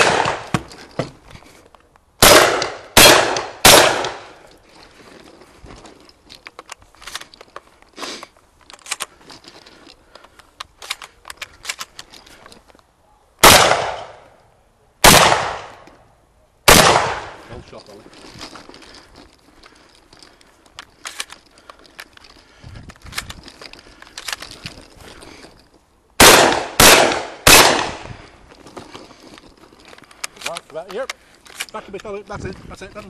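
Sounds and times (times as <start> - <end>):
gunshots with ringing tail: 0.0 - 0.5, 2.2 - 4.4, 13.4 - 14.2, 15.0 - 15.8, 16.7 - 17.4, 26.2 - 28.0
gun handling clicks and rattles: 0.0 - 12.9, 17.6 - 33.0.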